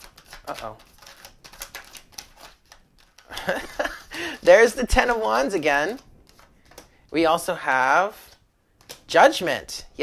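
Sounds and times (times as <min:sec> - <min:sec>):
cards being shuffled: 0:00.0 - 0:03.9, 0:04.6 - 0:07.1, 0:08.2 - 0:09.1.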